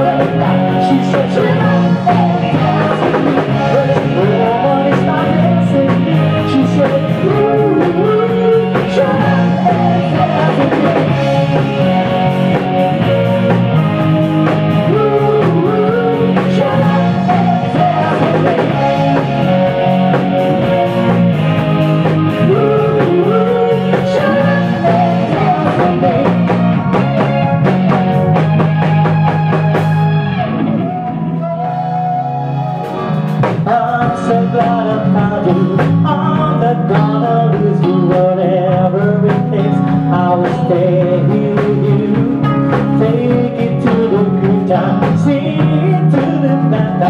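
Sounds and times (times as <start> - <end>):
person singing: 0.0 - 13.9, 14.5 - 21.3, 22.2 - 28.3, 30.8 - 47.0
bass guitar: 0.0 - 47.0
drum kit: 0.0 - 47.0
electric guitar: 0.0 - 47.0
keyboard: 0.0 - 47.0.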